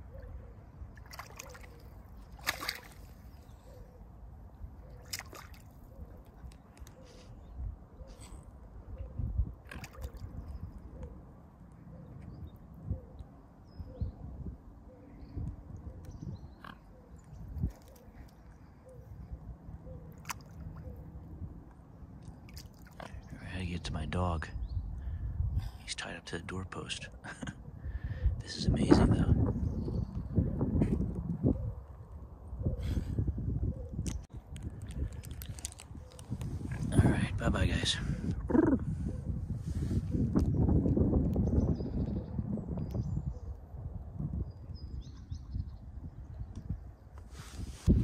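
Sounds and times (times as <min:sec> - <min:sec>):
swan dabbling in water and mud: 0:00.9 - 0:03.5, 0:04.9 - 0:06.7, 0:09.6 - 0:10.4, 0:20.2 - 0:20.8, 0:22.2 - 0:23.3
wind buffeting microphone: 0:07.3 - 0:11.1, 0:12.1 - 0:19.8, 0:23.0 - 0:25.8, 0:27.2 - 0:48.0.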